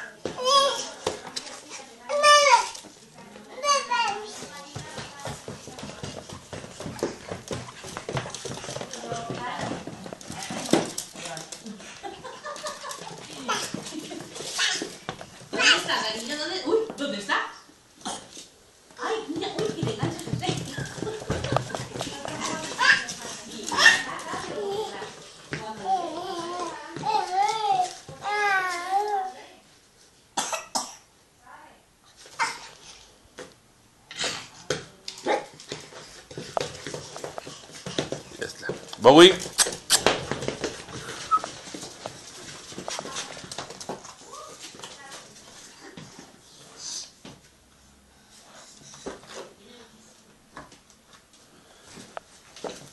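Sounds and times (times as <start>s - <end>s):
dog claws clicking on wood floor: 4.1s - 11.7s
dog whining: 41.1s - 41.6s.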